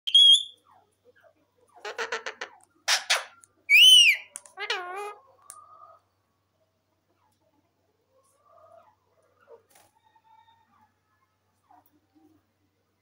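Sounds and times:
parakeet calling: 0:00.1 - 0:00.6, 0:01.8 - 0:05.2.

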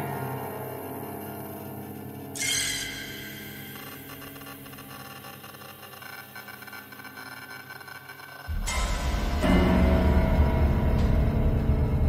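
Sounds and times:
drone of held tones: 0:00.0 - 0:07.7
ominous soundtrack music: 0:00.0 - 0:12.0
loud deep hit: 0:08.5 - 0:12.0.

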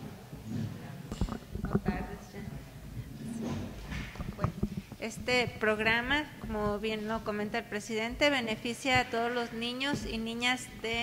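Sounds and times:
microphone handling knocks: 0:00.4 - 0:11.0.

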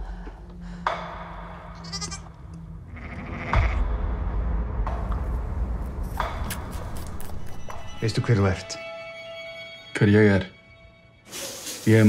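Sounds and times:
lamb bleating: 0:01.8 - 0:03.8
steady low drone: 0:03.8 - 0:09.2.

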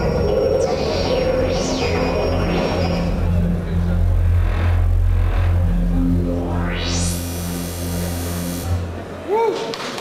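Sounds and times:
held synthesizer tones: 0:00.0 - 0:09.0
bass drone: 0:00.0 - 0:09.3
industrial electronic music: 0:00.0 - 0:09.4.

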